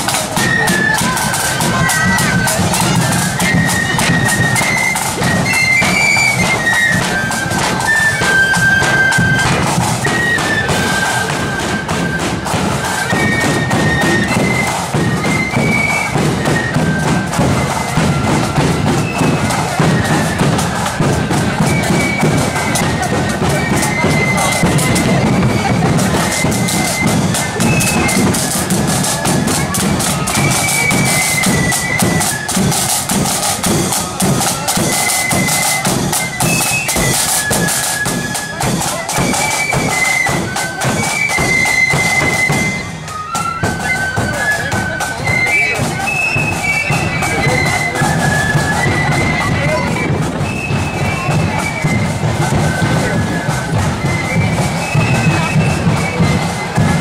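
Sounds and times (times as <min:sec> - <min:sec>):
high flute melody: 0:00.0 - 0:57.0
side drum beat: 0:00.0 - 0:57.0.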